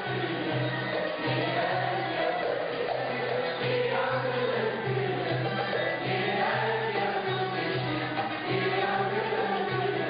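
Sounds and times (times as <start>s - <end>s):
choir singing wavering melody: 0.0s - 10.0s.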